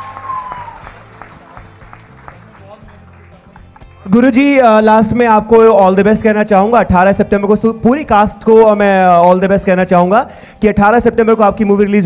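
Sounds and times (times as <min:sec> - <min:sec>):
audience applause: 0:00.0 - 0:03.9.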